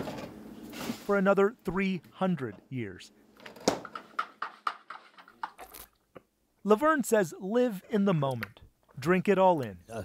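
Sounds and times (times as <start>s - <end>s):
kitchen items knocking and clinking: 3.4s - 5.8s.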